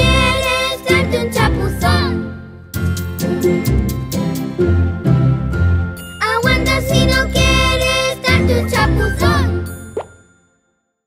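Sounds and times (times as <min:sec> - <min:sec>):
cartoon song music: 0:00.0 - 0:02.5, 0:06.0 - 0:10.1
cartoon bubble pop: 0:10.0 - 0:10.2.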